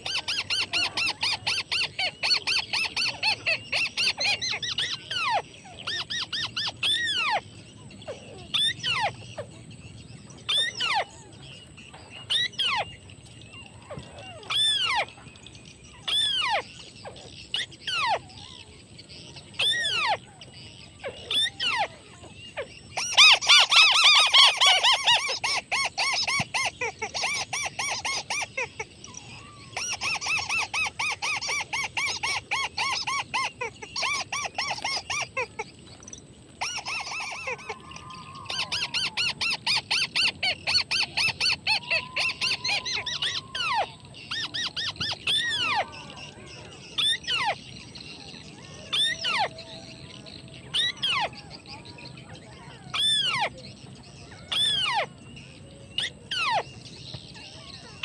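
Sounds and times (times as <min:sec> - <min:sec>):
bird chattering calls: 0:00.0 - 0:58.0.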